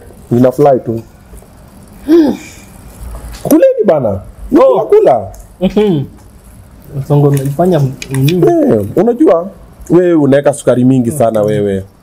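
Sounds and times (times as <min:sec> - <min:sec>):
man talking: 0:00.3 - 0:01.1, 0:03.4 - 0:06.1, 0:06.8 - 0:12.0.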